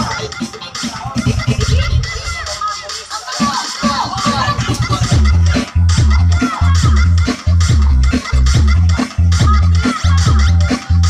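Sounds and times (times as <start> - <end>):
dance music with heavy bass beat: 0.0 - 11.0.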